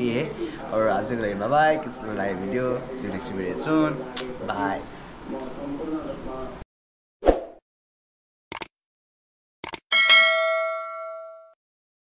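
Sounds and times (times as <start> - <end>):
bright bell ding: 9.9 - 11.6.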